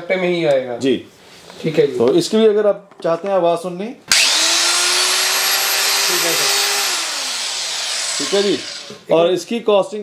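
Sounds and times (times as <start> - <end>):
electric cutter whining: 4.1 - 9.0.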